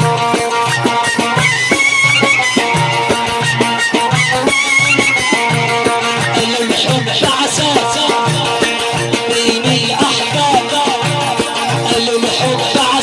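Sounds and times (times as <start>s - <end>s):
high wavering melody: 0.0s - 7.1s
frame drum beating: 0.0s - 13.0s.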